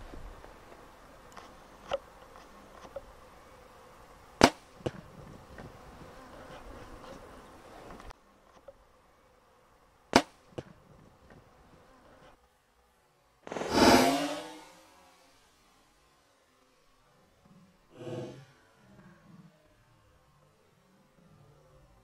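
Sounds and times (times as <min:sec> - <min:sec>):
faint outdoor background: 0:00.0 - 0:22.0.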